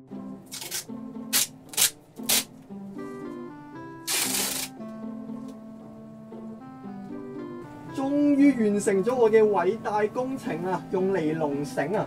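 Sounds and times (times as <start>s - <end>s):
background music: 0.0s - 12.0s
adhesive tape ripping off roll: 0.5s - 2.6s, 4.0s - 4.8s.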